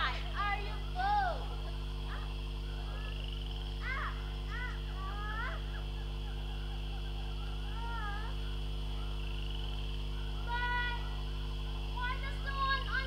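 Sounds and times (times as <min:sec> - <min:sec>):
faint high-pitched calls: 0:00.0 - 0:13.0
low electrical hum: 0:00.0 - 0:13.0.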